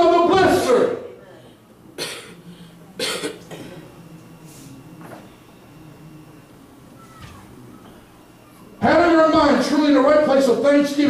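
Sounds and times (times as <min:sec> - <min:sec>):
man speaking: 0:00.0 - 0:01.1, 0:08.8 - 0:11.0.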